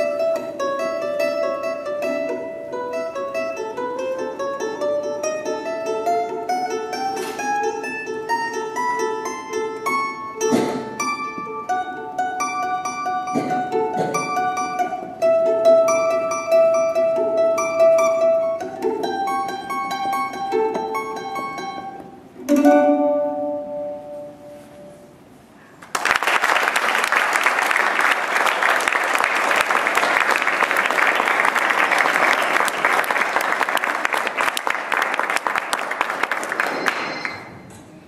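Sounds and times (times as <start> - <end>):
mandolin picking: 0.0 - 25.4
audience applause: 25.8 - 37.4.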